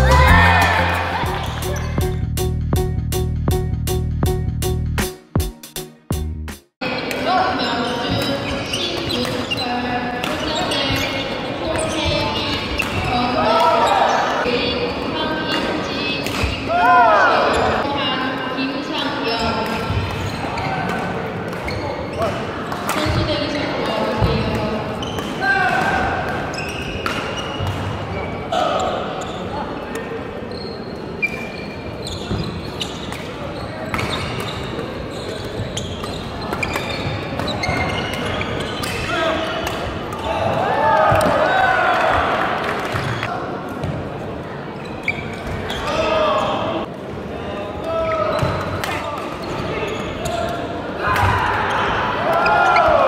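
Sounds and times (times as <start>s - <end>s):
players calling out: 0.0s - 2.1s
voices around hall: 6.8s - 53.0s.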